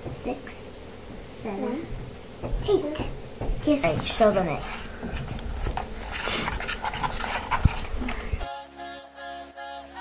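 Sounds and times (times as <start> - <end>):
stick stirring shaving cream: 3.7 - 8.4.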